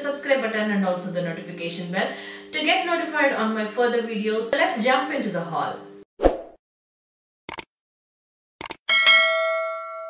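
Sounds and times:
quick clicks: 7.5 - 7.7, 8.6 - 8.8
notification bell ding: 8.9 - 10.0.

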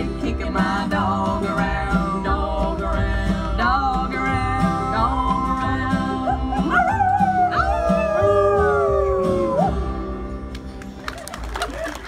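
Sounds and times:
guitar strumming: 0.0 - 11.1
upright bass: 0.0 - 12.0
people howling like dogs: 5.0 - 10.2.

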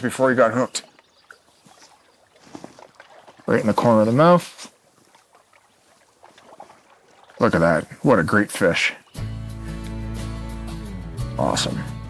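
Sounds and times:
water splashing and lapping: 0.0 - 9.1.

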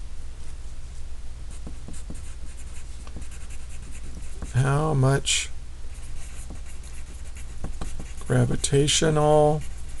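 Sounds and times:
steady low hum: 0.0 - 10.0
pencil scratching on paper: 1.5 - 4.8, 5.9 - 10.0.

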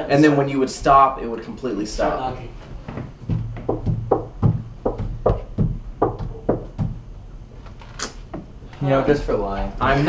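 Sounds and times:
knuckles knocking on wooden door: 3.0 - 7.2.

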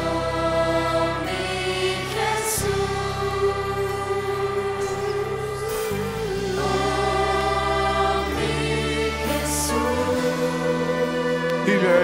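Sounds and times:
keyboard chords: 0.0 - 12.0
voices singing held notes: 0.0 - 12.0.

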